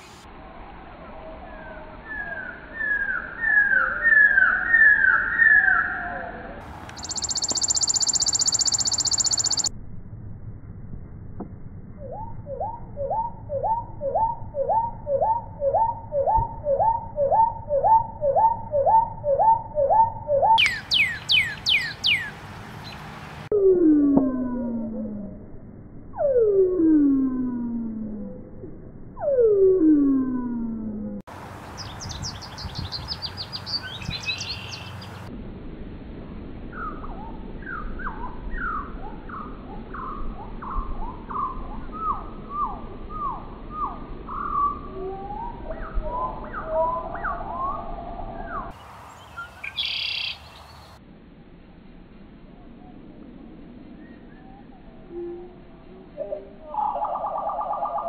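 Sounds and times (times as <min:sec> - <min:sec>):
songbirds singing: 0:01.4 - 0:09.7, 0:12.0 - 0:23.2, 0:31.6 - 0:35.3, 0:36.7 - 0:51.0
falling bird whistles: 0:07.0 - 0:09.7
fast high bird trill: 0:07.0 - 0:09.7, 0:20.5 - 0:22.3.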